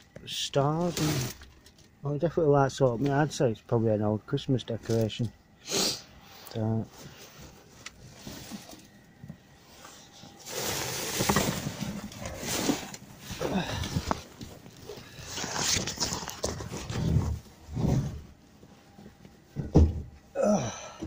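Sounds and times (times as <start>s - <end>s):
plastic bin bags rustling: 0.2s - 3.4s, 7.0s - 19.6s
person breathing heavily: 13.2s - 15.4s, 20.4s - 21.0s.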